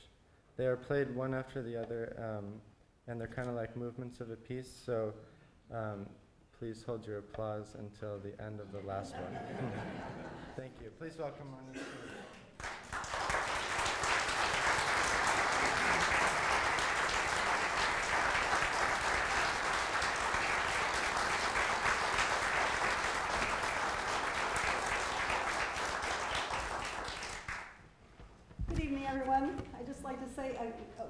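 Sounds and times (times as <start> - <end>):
audience applauding: 12.6 - 27.8.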